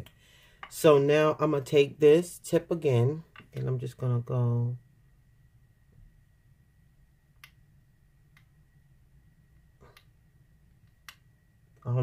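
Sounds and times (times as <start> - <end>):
faint steady high whine: 0.0 - 12.0.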